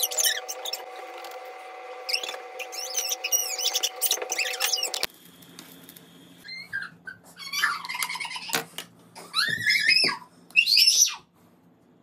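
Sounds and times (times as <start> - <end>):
high-pitched chirping and squeaking: 0.0 - 1.0, 2.1 - 5.1, 6.4 - 8.5.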